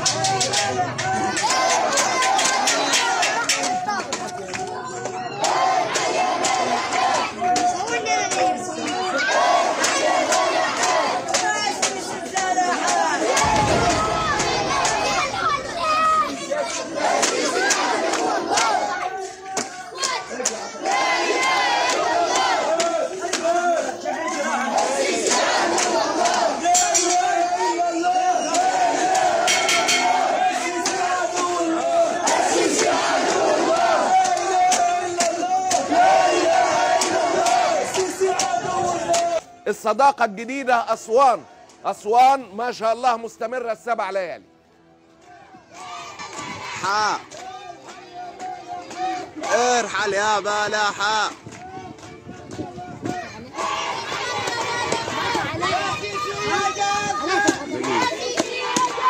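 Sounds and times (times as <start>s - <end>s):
crowd of men shouting and chanting: 0.0s - 44.2s, 45.1s - 59.0s.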